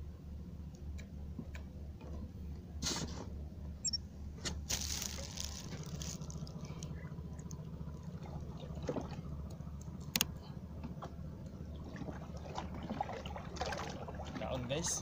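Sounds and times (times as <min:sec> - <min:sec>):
steady low hum: 0:00.0 - 0:15.0
water splashing: 0:04.7 - 0:09.3, 0:11.7 - 0:15.0.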